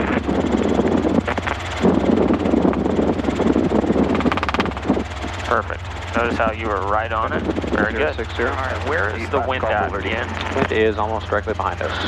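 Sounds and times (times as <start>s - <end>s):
helicopter rotor and engine drone: 0.0s - 12.0s
loud uneven rushing noise: 0.0s - 12.0s.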